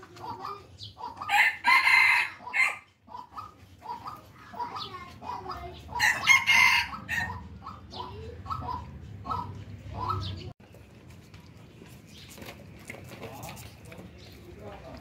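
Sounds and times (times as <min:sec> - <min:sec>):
chickens clucking: 0:00.0 - 0:15.0
rooster crowing: 0:01.3 - 0:02.8, 0:06.0 - 0:07.4.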